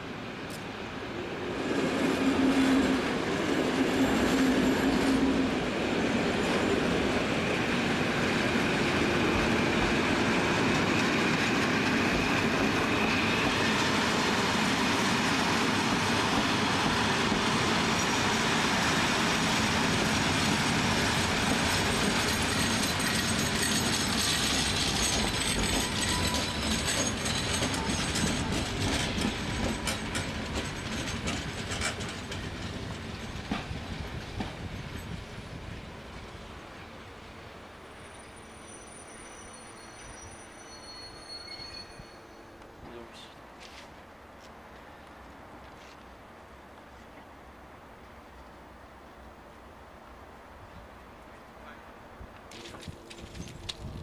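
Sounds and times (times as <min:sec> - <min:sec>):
high wheel squeal: 0:12.0 - 0:13.9, 0:21.8 - 0:28.8, 0:38.0 - 0:42.6
wheels clattering over rail joints: 0:20.0 - 0:35.2, 0:52.5 - 0:54.0.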